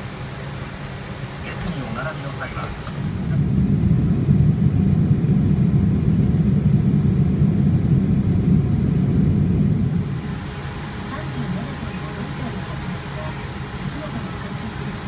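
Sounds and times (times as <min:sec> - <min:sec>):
airliner cabin rumble: 0:00.0 - 0:15.0.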